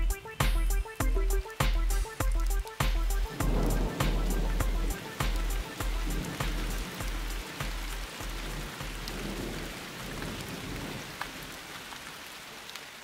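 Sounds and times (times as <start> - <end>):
drips ticking: 0.0 - 10.3
steady rain: 0.0 - 13.0.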